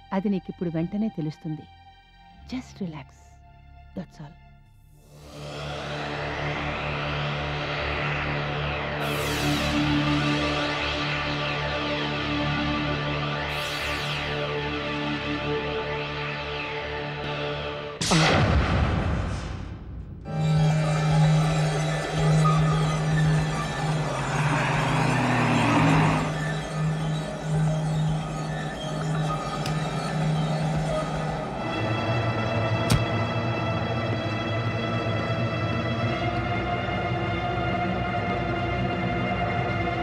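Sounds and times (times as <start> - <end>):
low electronic drone: 5.0 - 18.6, 20.2 - 40.0
vehicle engine revving: 22.6 - 33.6.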